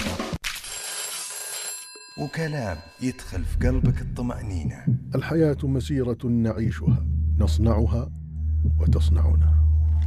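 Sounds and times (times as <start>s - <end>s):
background music: 3.0s - 10.0s.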